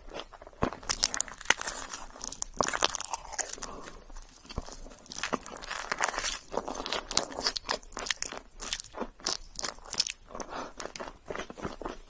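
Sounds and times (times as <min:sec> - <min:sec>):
chewing marshmallow: 0:00.0 - 0:12.0.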